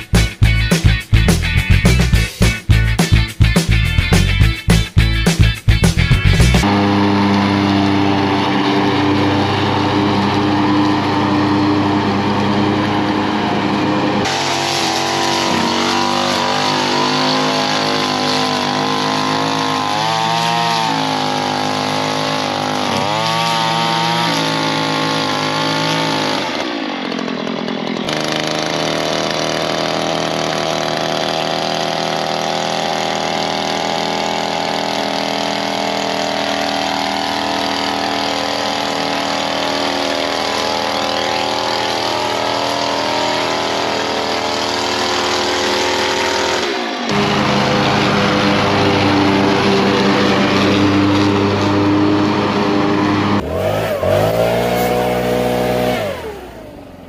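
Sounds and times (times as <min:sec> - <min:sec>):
mower engine running: 0:00.0 - 0:57.0
string trimmer engine revving: 0:00.0 - 0:57.0.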